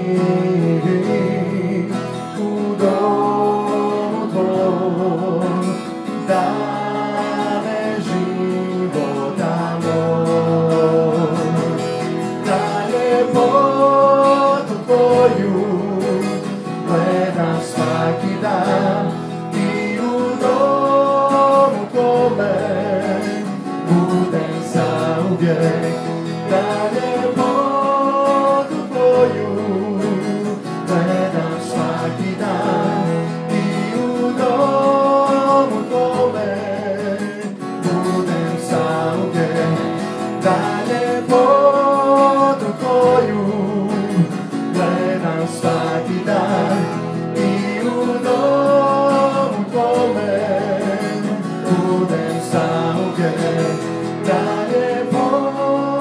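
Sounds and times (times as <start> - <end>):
keyboard: 0.0 - 56.0
person singing: 0.0 - 56.0
strummed acoustic guitar: 0.0 - 56.0
worship band playing: 0.0 - 56.0.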